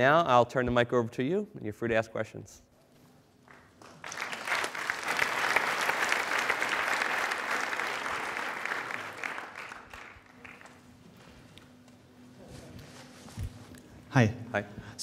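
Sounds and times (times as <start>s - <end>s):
audience applauding: 3.5s - 10.9s.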